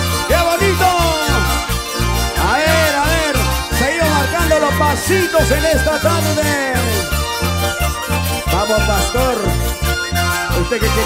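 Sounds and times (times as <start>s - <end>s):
electric guitars and mandolin: 0.0s - 11.0s
pulsing bass beat: 0.0s - 11.0s
trumpets and saxophone melody: 0.0s - 11.0s.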